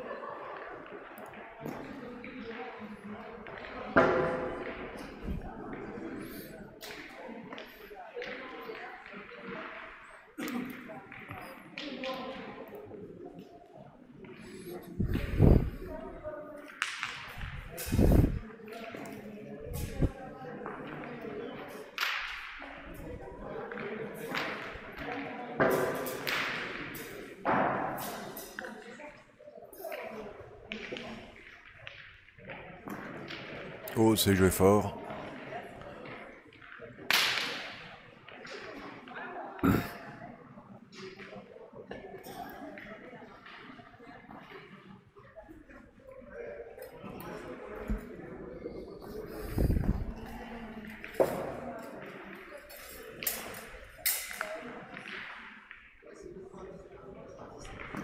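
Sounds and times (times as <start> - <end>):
chatter of people: 0.0 - 58.0.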